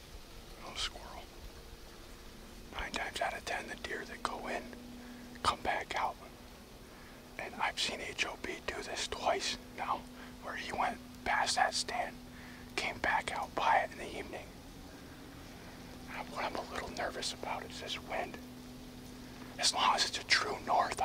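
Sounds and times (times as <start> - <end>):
man whispering: 0.5 - 1.4, 2.7 - 14.6, 16.0 - 18.5, 19.2 - 21.0.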